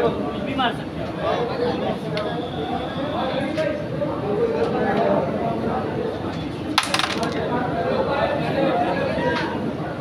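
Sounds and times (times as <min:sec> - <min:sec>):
crowd chatter: 0:00.0 - 0:10.0
carrom pieces clattering: 0:06.7 - 0:07.5.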